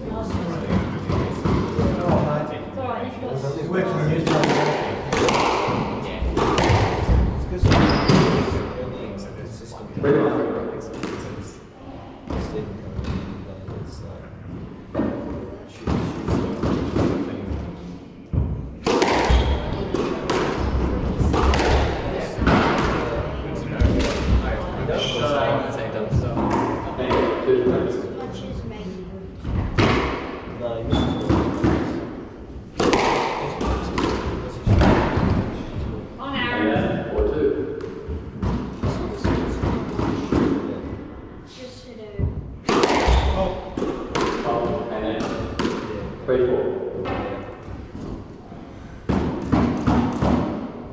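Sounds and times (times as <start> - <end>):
squash ball thudding off walls: 18.3 - 23.2, 32.7 - 35.6, 42.2 - 45.9.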